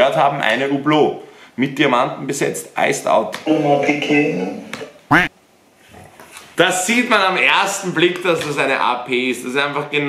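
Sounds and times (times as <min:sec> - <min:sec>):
quack-like squawk sound effect: 0:05.1 - 0:05.3.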